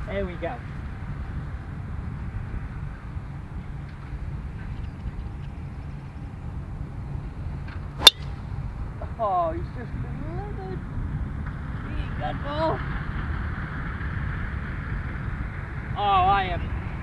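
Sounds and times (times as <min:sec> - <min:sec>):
steady low background noise: 0:00.0 - 0:17.0
golf ball struck with sharp crack: 0:08.0 - 0:08.4.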